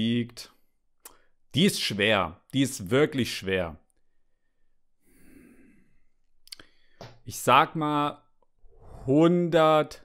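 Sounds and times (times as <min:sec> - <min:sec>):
mouth click: 0:01.0 - 0:01.2, 0:06.4 - 0:06.8.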